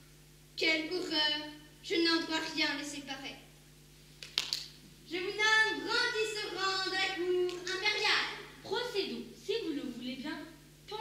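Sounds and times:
child speaking on stage: 0.6 - 3.5, 5.1 - 11.0.

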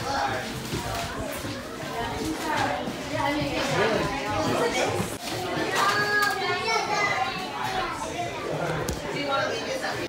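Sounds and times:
children's voices: 0.2 - 8.8.

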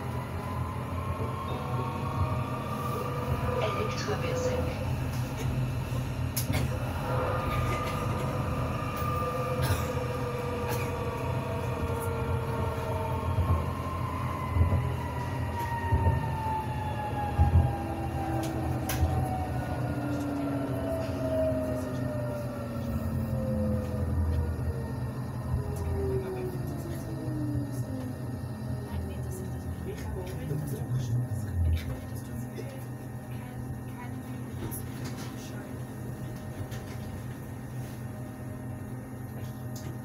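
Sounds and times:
tram wheels rumbling on rail: 0.0 - 40.0.

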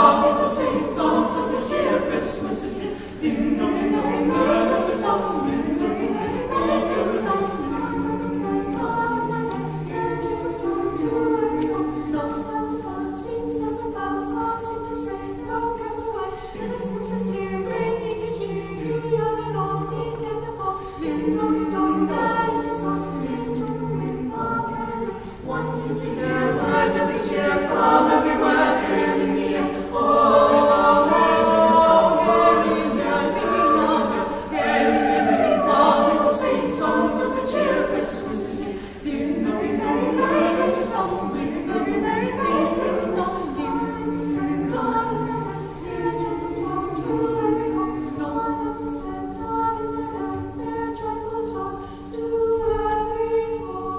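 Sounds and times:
choir singing unaccompanied: 0.0 - 53.9.

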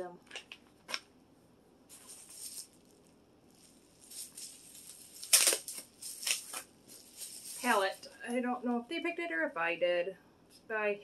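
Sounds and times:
plastic packaging crinkling: 0.3 - 1.1, 1.9 - 8.2.

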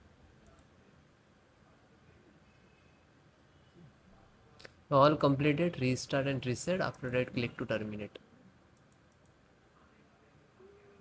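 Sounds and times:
computer mouse click: 0.4 - 0.7, 8.8 - 9.4.

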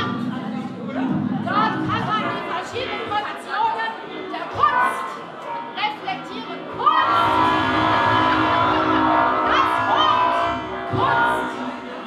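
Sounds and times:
live electronic sound: 6.8 - 12.0
woman singing sustained tones: 7.0 - 11.8.

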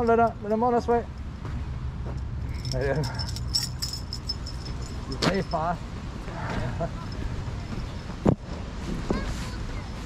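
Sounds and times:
metal chain lead jangling: 2.2 - 5.8.

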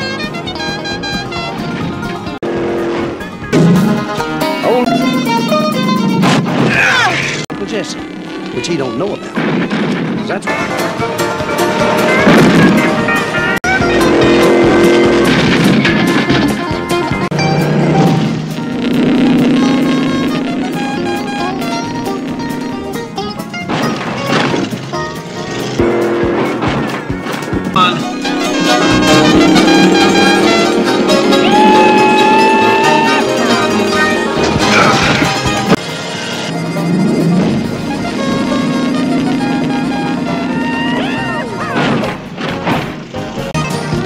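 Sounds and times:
fast music score: 0.0 - 6.7, 10.4 - 44.0
car engine racing: 0.0 - 44.0.

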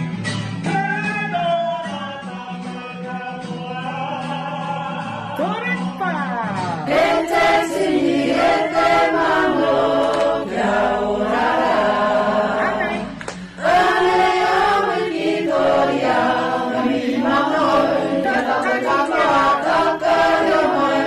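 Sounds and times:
group singing in chorus: 6.8 - 21.0.

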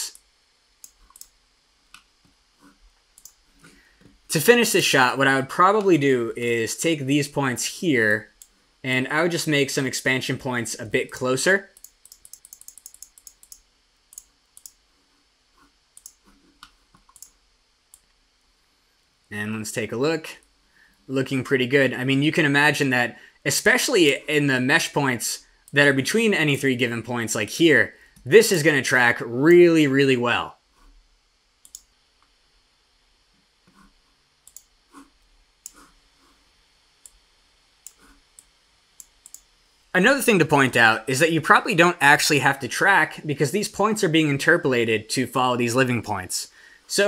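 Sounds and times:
computer mouse clicking: 0.1 - 4.1, 11.7 - 14.8, 16.0 - 18.2, 31.6 - 31.9, 33.7 - 34.7, 35.6 - 35.9, 37.8 - 39.5.

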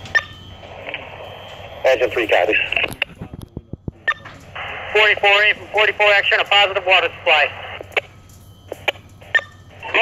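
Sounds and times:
radio beep: 0.1 - 3.2, 3.8 - 10.0
voice over radio: 1.8 - 7.9, 9.8 - 10.0
radio clicks: 2.5 - 5.4, 7.6 - 8.1.

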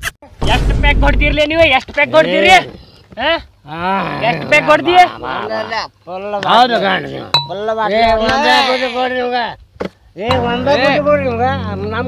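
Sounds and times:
glass clink: 7.3 - 7.7.

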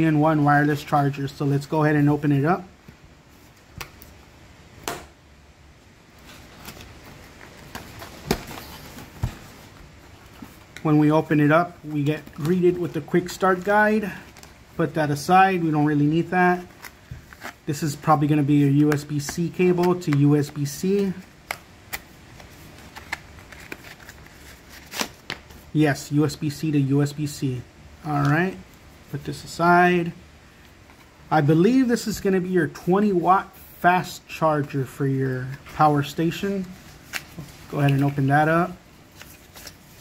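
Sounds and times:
paper rustling: 6.2 - 14.6, 16.5 - 25.6, 36.4 - 40.0.

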